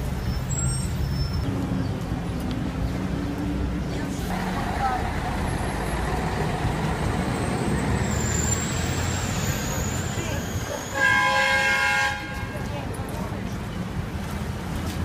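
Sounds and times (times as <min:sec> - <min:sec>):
street traffic noise: 0:00.0 - 0:15.0
vehicle horn blast: 0:11.0 - 0:12.5.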